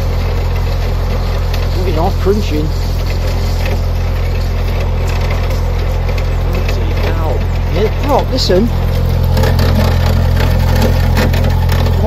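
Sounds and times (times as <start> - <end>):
boat engine running: 0.0 - 12.0.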